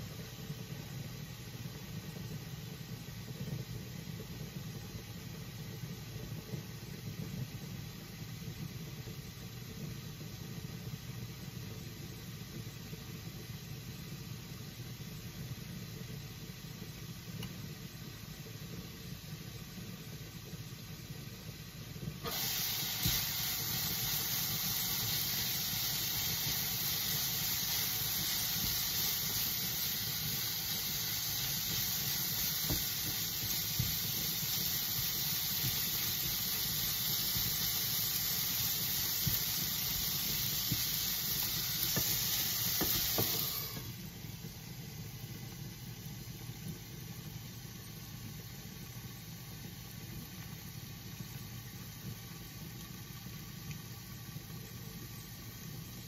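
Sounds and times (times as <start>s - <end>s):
cabbage sizzling in a frying pan: 22.2s - 49.2s.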